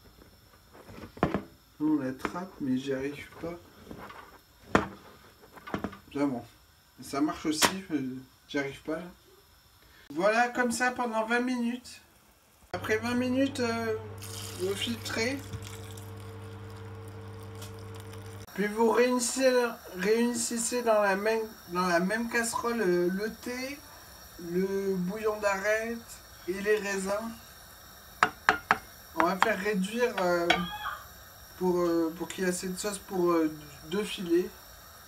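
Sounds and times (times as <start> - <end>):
steady low hum: 12.7 - 30.4
liquid pouring through sieve: 14.2 - 18.5.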